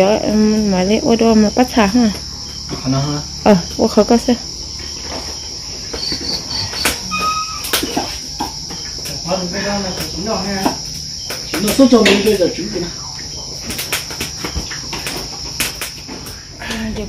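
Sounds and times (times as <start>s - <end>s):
crickets trilling: 0.0s - 17.0s.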